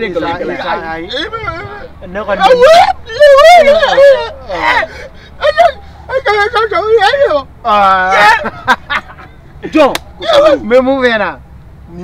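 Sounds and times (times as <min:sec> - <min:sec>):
man talking animatedly: 0:00.0 - 0:08.5, 0:09.6 - 0:12.0.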